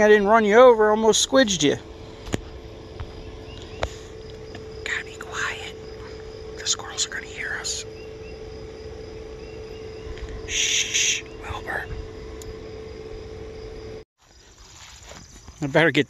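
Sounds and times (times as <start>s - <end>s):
vehicle motor humming: 0.0s - 14.1s
short hiss: 10.5s - 11.2s.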